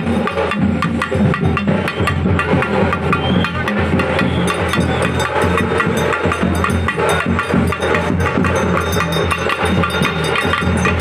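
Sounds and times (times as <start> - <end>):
drums beaten in fast rhythm: 0.0 - 11.0.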